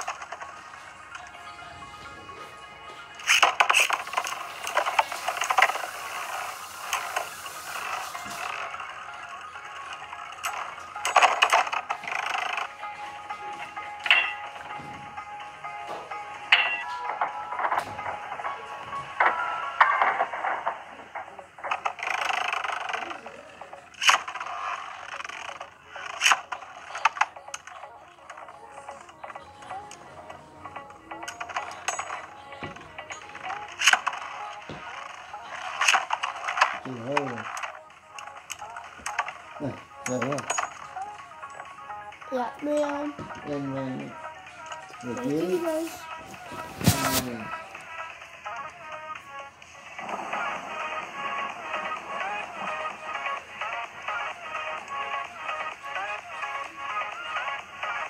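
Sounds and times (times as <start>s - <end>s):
music: 0.0s - 58.0s.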